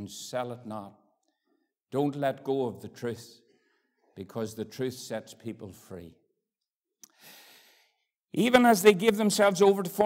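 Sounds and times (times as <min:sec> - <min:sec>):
soft intake of breath: 0:07.1 - 0:08.0.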